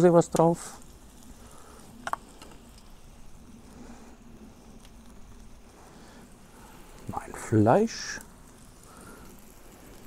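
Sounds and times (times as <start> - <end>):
fire sizzling and crackling: 0.0 - 10.0.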